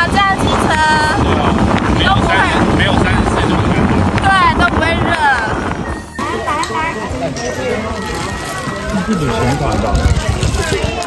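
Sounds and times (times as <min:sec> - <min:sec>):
outdoor background: 0:00.0 - 0:11.0
wind buffeting microphone: 0:00.0 - 0:11.0.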